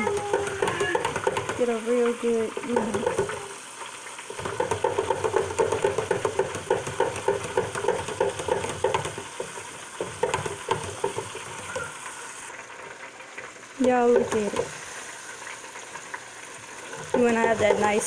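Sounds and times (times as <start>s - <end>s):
food deep-frying in oil: 0.0s - 18.0s.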